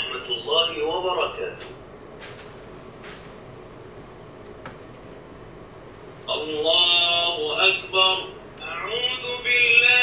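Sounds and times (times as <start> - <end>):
recorded voice chanting prayer: 0.0 - 1.7, 6.2 - 10.0.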